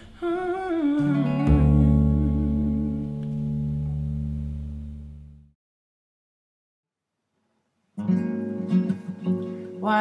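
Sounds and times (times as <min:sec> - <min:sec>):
person humming with vibrato: 0:00.0 - 0:03.2
double bass notes: 0:00.4 - 0:05.6
electric guitar chords: 0:00.9 - 0:05.5.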